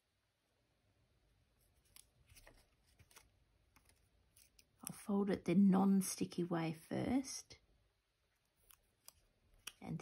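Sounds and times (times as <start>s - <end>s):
paper folding ticks and rustles: 1.7s - 4.8s
woman speaking: 4.8s - 7.6s, 9.7s - 10.0s.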